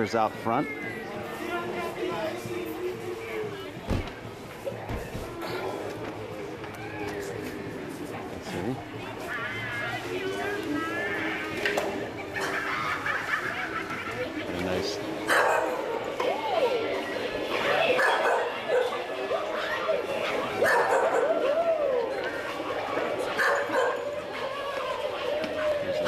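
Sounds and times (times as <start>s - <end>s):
people's voices: 0.0s - 26.0s.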